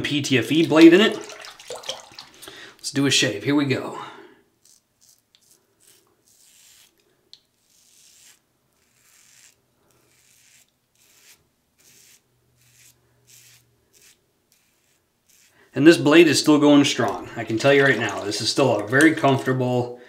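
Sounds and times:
razor scraping stubble: 4.6s - 16.0s.

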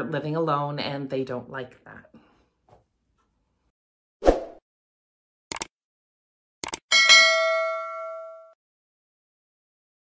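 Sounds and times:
notification bell ding: 6.9s - 8.6s.

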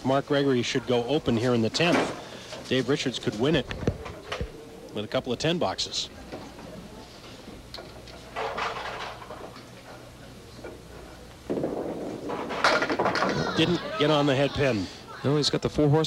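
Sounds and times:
bowling ball rolling on wooden lane: 11.4s - 13.8s.

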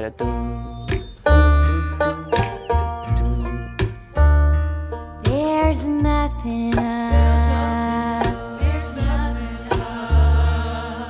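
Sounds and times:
bluegrass band music: 0.0s - 11.0s
heavy bass notes: 0.0s - 11.0s
woman singing: 5.3s - 10.3s.

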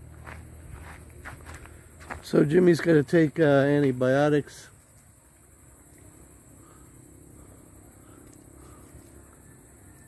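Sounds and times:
footsteps on rough ground: 0.0s - 3.4s.

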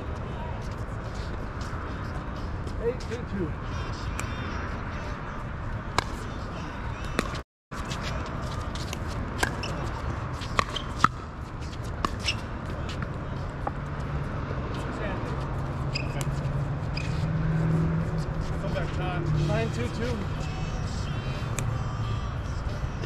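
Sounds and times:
outdoor background noise: 0.0s - 23.0s.

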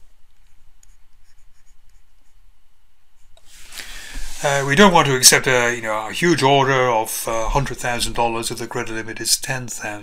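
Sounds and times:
faint low hum: 0.0s - 10.0s
stylus scratching on tablet: 0.4s - 2.4s.

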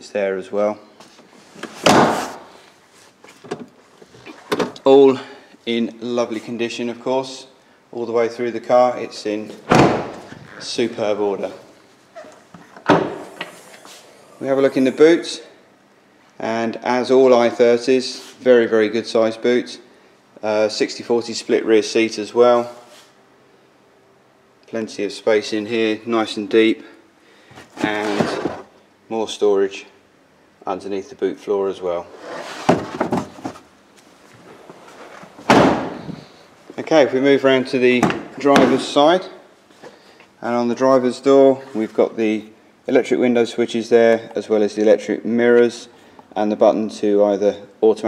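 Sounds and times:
car tailgate slamming: 1.8s - 2.4s, 9.7s - 10.3s, 35.5s - 36.2s.

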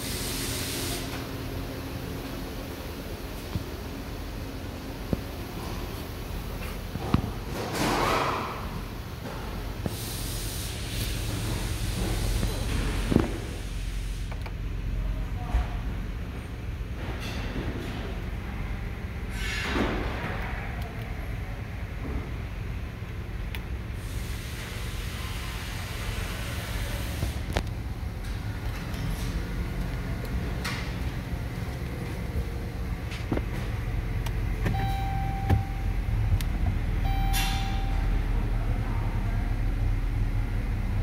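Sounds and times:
blower fan air rush: 0.0s - 15.2s, 18.0s - 41.0s
steady low hum: 0.0s - 41.0s
car engine idling: 19.9s - 41.0s.

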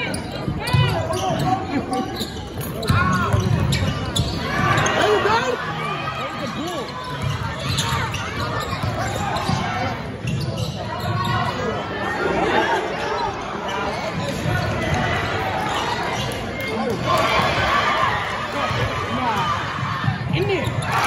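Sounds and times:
people shouting and talking: 0.0s - 21.0s.

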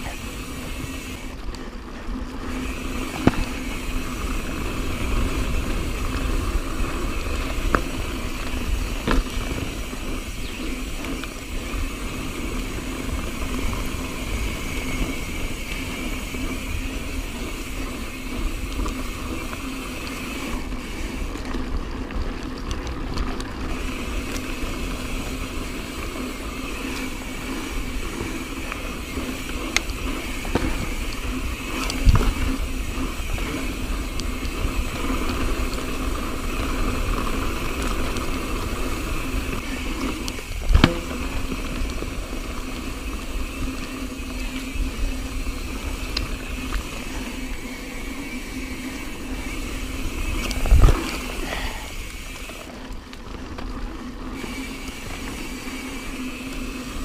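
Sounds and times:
bike knocking and rattling: 0.0s - 57.0s
bike tyre rumble on dirt: 0.0s - 57.0s
wind noise on microphone: 26.4s - 47.7s, 48.7s - 51.7s.

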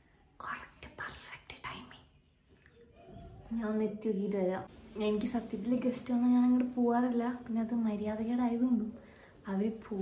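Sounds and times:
woman whispering: 0.4s - 2.3s
woman speaking: 3.5s - 10.0s.

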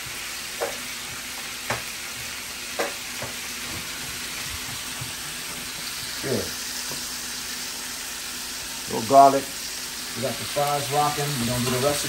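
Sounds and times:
fries sizzling in oil: 0.0s - 12.0s.

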